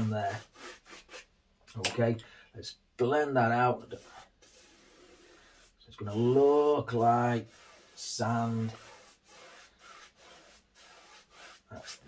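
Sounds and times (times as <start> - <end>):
brush swishing on canvas: 3.9 - 12.0.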